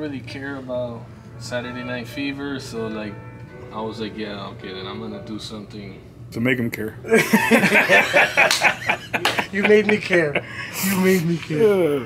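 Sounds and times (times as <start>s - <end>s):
men laughing loudly: 7.1s - 10.8s.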